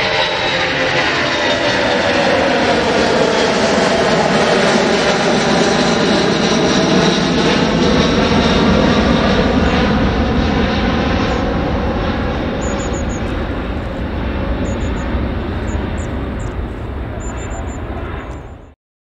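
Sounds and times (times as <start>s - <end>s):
jet engines rumbling: 0.0s - 18.8s.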